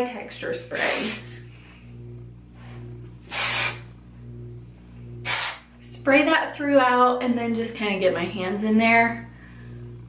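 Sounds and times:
hair spray hissing: 0.7s - 1.4s, 3.2s - 3.9s, 5.2s - 5.7s.

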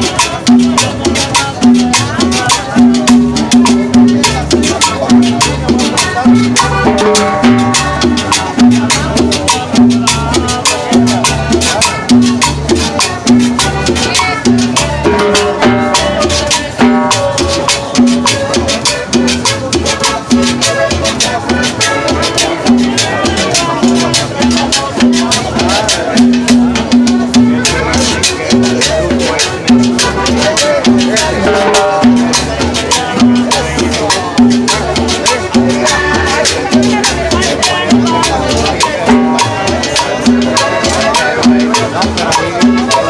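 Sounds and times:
accordion: 0.0s - 43.0s
bass line: 0.0s - 43.0s
percussion beat: 0.0s - 43.0s
plucked stringed instrument: 0.0s - 43.0s.

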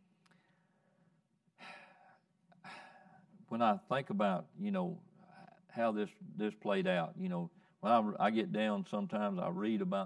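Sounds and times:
man breathing: 0.3s - 3.4s.

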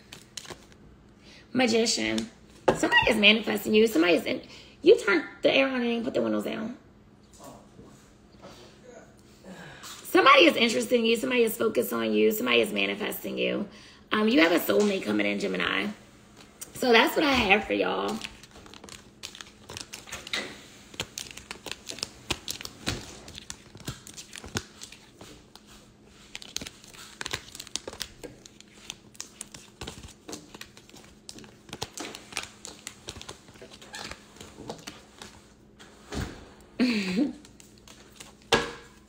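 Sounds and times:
cards shuffling clicks: 18.1s - 35.4s.

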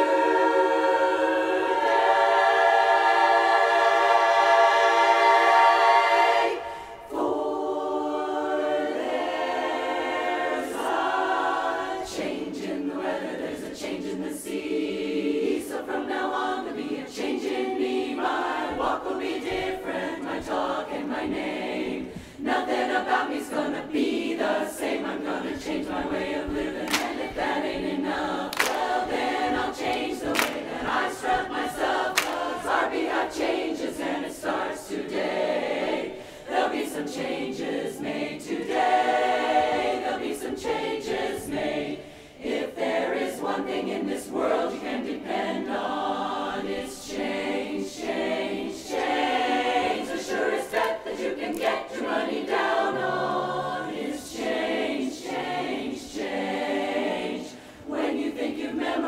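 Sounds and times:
women's chorus singing a cappella: 0.0s - 59.0s.

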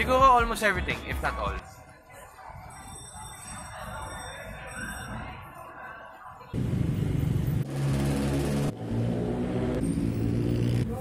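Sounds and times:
traffic passing: 6.6s - 11.0s.

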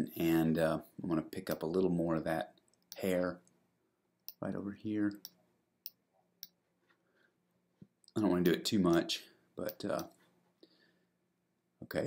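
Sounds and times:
person speaking: 8.1s - 10.2s.

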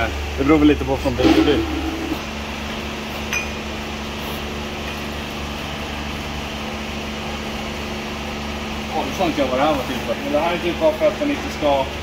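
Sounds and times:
steady machine hum: 0.0s - 12.0s
light metallic clink: 3.3s - 3.6s.

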